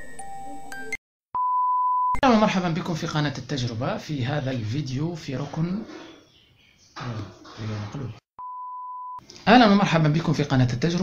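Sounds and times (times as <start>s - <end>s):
steady electronic beep: 8.4s - 9.2s.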